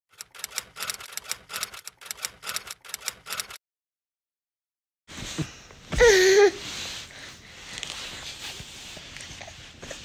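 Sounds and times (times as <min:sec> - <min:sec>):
typewriter key clicks: 0:00.2 - 0:03.6.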